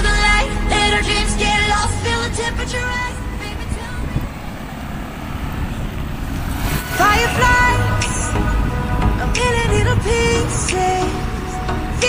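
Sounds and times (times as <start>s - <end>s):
road traffic: 0.0s - 12.0s
wind rumbling on microphone: 0.8s - 12.0s.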